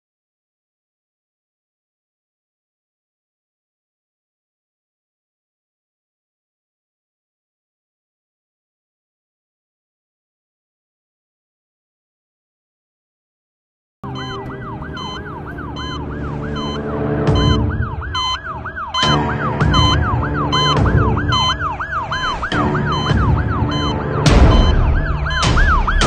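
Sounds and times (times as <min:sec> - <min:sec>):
low droning music: 0:14.0 - 0:26.0
siren wailing: 0:14.0 - 0:26.0.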